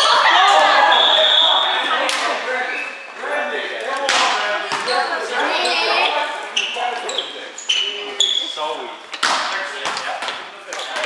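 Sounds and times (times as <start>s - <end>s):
players calling out: 0.0s - 9.6s
sneakers squeaking on wooden floor: 4.6s - 9.3s, 10.3s - 11.0s.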